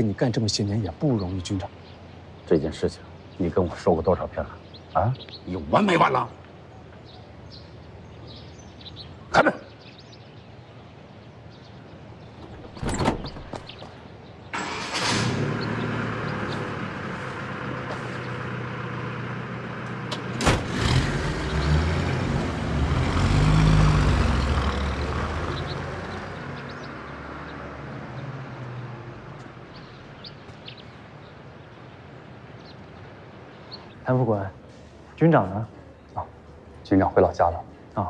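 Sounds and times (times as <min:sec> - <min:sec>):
car door slamming: 0:12.4 - 0:13.8, 0:20.4 - 0:20.8
car pulling away: 0:14.5 - 0:30.8.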